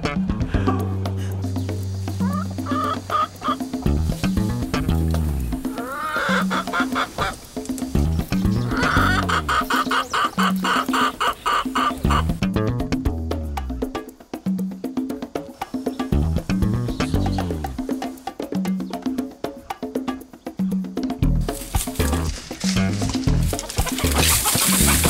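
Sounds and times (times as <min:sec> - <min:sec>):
rooster clucking: 0:00.0 - 0:12.4, 0:21.4 - 0:25.0
background music with bass line: 0:00.0 - 0:25.0.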